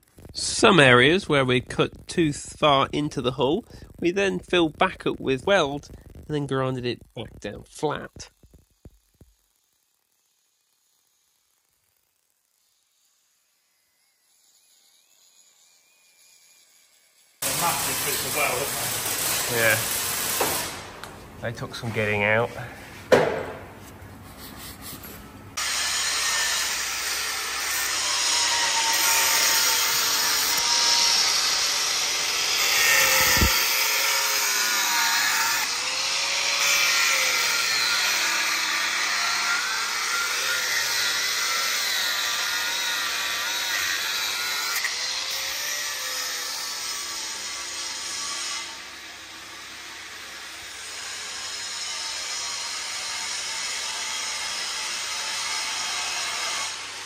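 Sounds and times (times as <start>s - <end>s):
angle grinder grinding steel: 0.3s - 20.9s, 25.6s - 57.0s.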